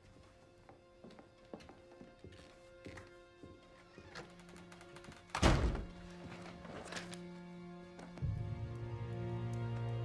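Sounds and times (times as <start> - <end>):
soft background music: 0.0 - 10.0
wooden door shutting: 4.0 - 6.1.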